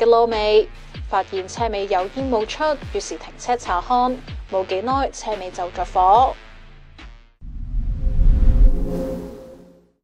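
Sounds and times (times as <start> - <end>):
low rumble: 7.4 - 9.3.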